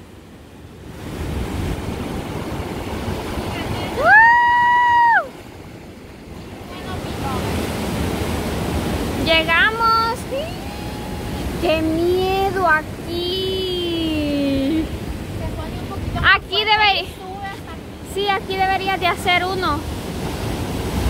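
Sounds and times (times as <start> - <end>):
ocean surf breaking on beach: 0.0 - 21.0
person's high drawn-out cry: 4.0 - 5.3, 10.4 - 11.4.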